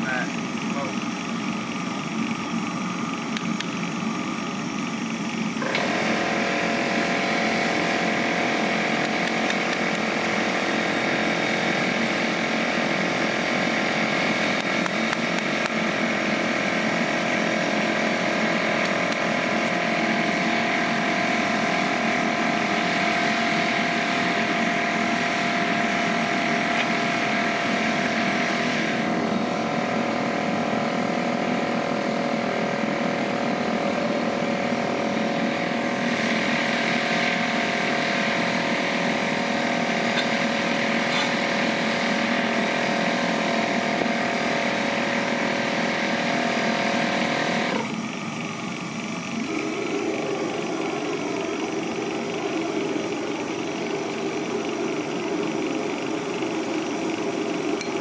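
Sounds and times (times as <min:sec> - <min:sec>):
small engine running: 0:00.0 - 0:58.0.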